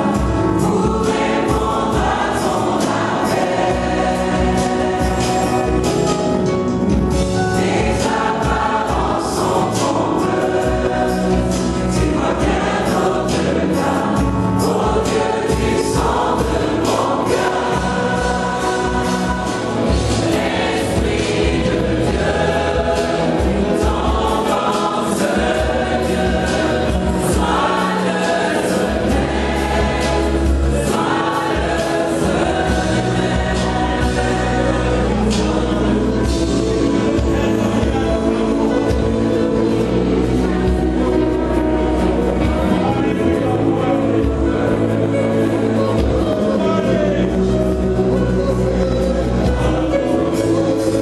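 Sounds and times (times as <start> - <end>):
gospel choir singing: 0.0 - 51.0.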